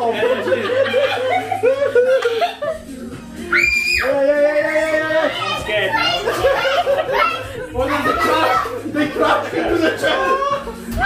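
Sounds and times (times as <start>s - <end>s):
people talking and laughing: 0.0s - 11.0s.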